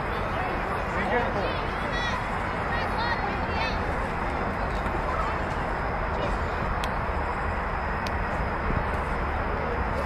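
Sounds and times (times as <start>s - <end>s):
distant voices of players and spectators: 0.0s - 10.0s
steady low rumble: 0.0s - 10.0s.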